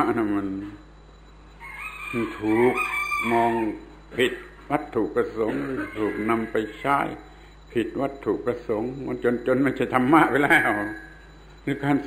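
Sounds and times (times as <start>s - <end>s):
man speaking: 0.0s - 0.8s, 2.1s - 12.0s
rooster crowing: 1.6s - 4.0s, 5.4s - 7.3s.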